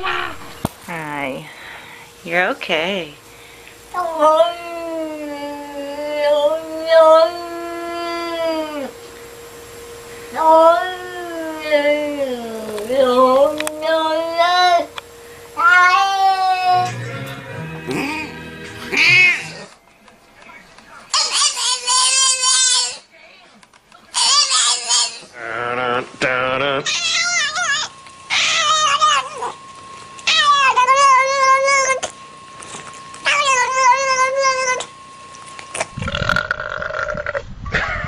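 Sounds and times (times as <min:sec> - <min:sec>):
cat yowling: 0:04.0 - 0:08.9, 0:10.4 - 0:14.9, 0:15.6 - 0:16.9, 0:18.9 - 0:19.7, 0:26.8 - 0:29.6, 0:30.2 - 0:32.1, 0:33.2 - 0:34.9
animal screaming: 0:15.6 - 0:16.9, 0:18.9 - 0:19.7, 0:21.1 - 0:23.1, 0:24.2 - 0:29.6, 0:30.2 - 0:32.1, 0:33.2 - 0:34.9.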